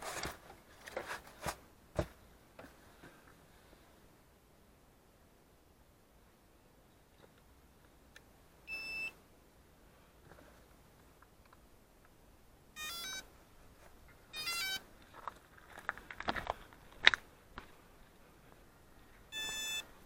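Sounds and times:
electronic beep tones: 0:19.3 - 0:19.9.

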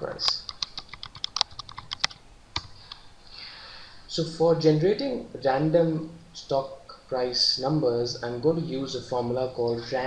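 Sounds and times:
computer keyboard typing: 0:00.2 - 0:02.8.

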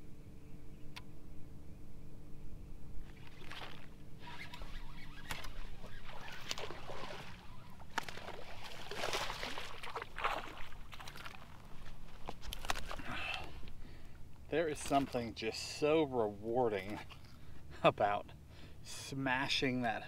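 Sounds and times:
low steady hum: 0:00.0 - 0:20.0
fish splashing in water: 0:05.3 - 0:11.6.

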